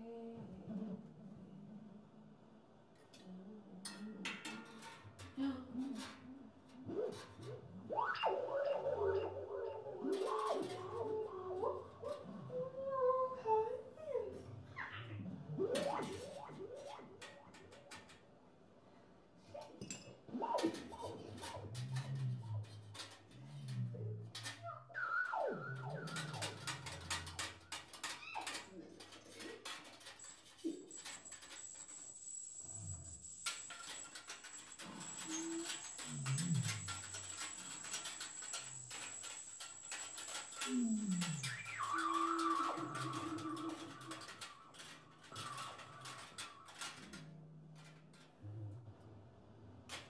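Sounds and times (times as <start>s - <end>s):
scattered clicks and rattles: 25.8s - 48.4s.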